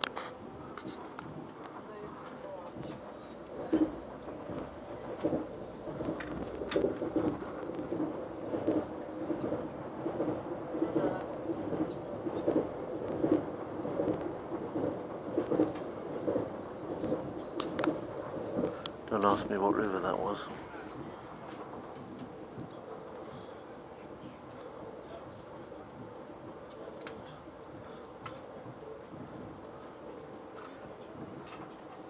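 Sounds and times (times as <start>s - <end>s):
train carriage running rumble: 0.0s - 32.0s.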